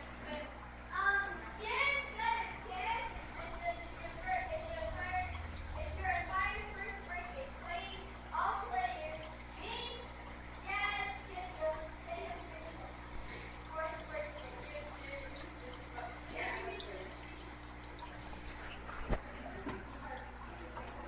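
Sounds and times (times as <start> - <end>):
aquarium equipment hum: 0.0 - 21.0
water trickling: 0.0 - 21.0.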